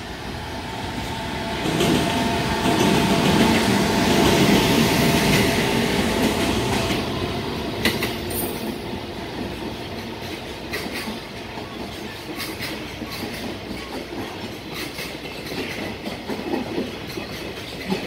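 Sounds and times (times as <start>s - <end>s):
train rumble: 0.0s - 18.0s
train wheels clacking over rail joints: 1.6s - 18.0s.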